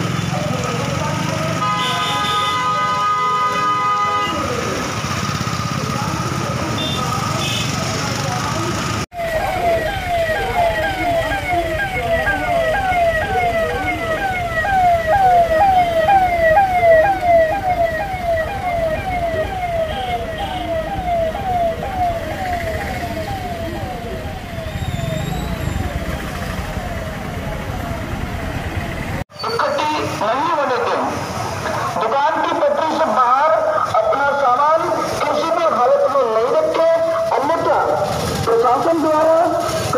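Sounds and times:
vehicle engines and traffic: 0.0 - 39.9
police siren yelp: 9.1 - 31.0.

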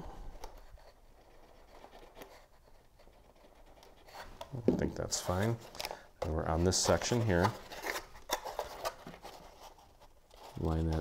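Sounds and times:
paper ticks and rubs: 0.4 - 11.0.

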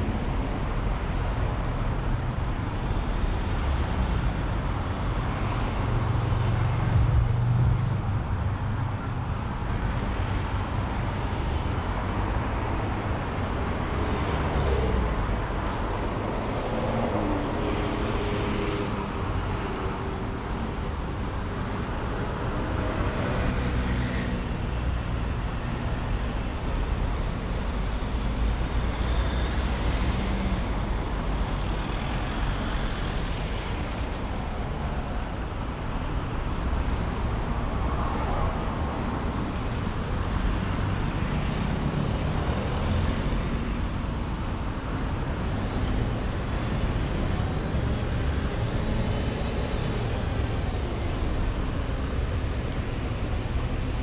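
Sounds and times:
road traffic rumble: 0.0 - 54.0
vehicles passing by: 0.0 - 54.0.

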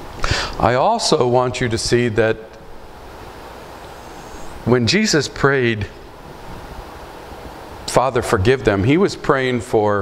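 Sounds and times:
room tone hiss: 0.0 - 10.0
man speaking: 0.6 - 2.6, 4.6 - 6.0, 7.9 - 10.0.

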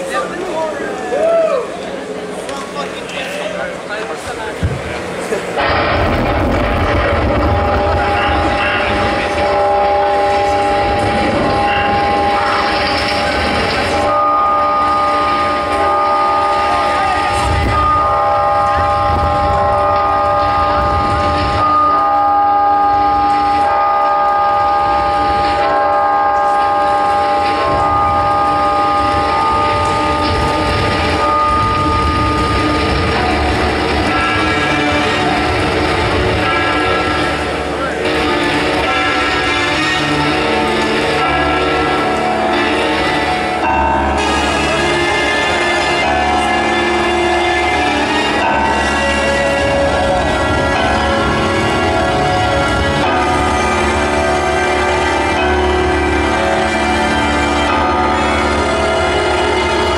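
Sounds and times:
low rumble: 4.7 - 23.6
synthesizer chords: 5.0 - 59.9.

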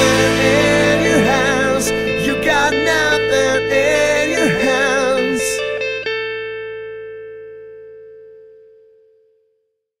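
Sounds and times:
guitar note ringing out: 0.0 - 9.3.

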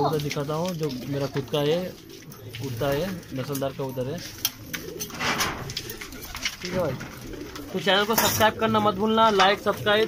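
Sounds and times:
beaks pecking grain: 0.0 - 10.0
pigeons cooing: 0.0 - 10.0.

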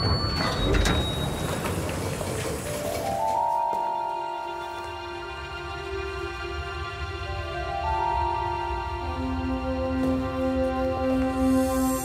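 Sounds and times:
elevator mechanical rumble: 0.0 - 12.0
music: 2.6 - 12.0.

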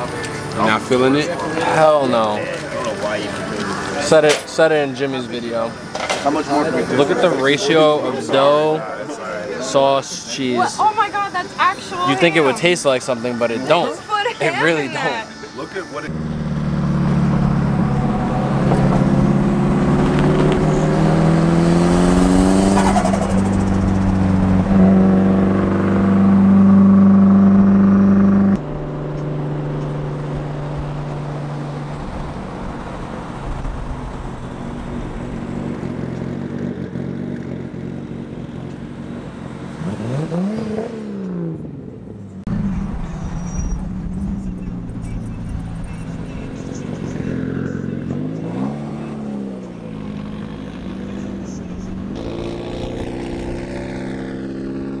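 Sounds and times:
quieter engine drone with rev: 14.6 - 55.0
loud engine drone: 15.4 - 38.4.

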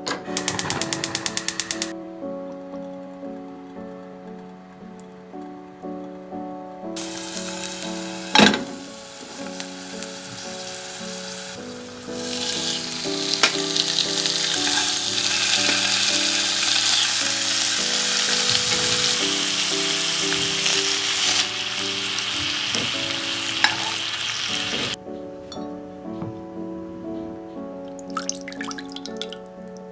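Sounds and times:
background music: 0.0 - 29.9
food sizzling in frying pan: 7.0 - 25.0.

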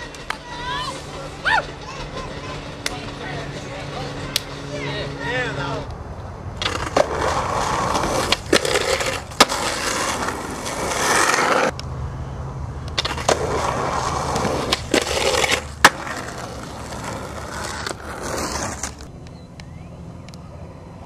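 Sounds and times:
skateboard wheels rolling on concrete: 0.0 - 21.0.

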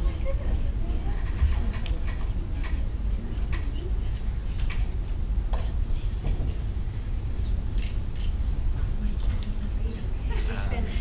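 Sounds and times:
faint murmuring voices: 0.0 - 11.0
steady low rumble: 0.0 - 11.0.

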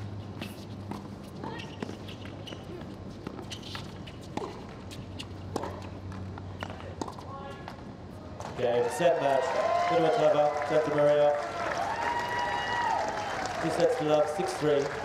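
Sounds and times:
rackets striking tennis ball: 0.4 - 7.8.

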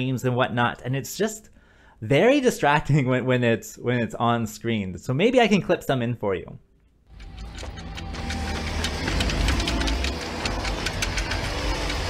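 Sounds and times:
low mechanical rumble: 7.1 - 12.0
sharp clicks and knocks: 7.1 - 12.0.

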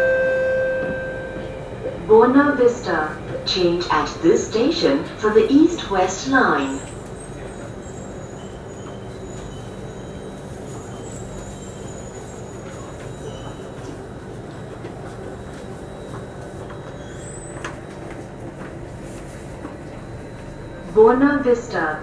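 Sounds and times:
train wheels and motors rumbling: 0.1 - 22.0.

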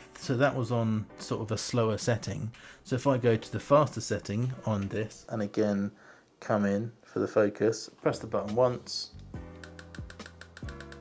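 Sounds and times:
background music: 0.0 - 5.5, 8.2 - 11.0.

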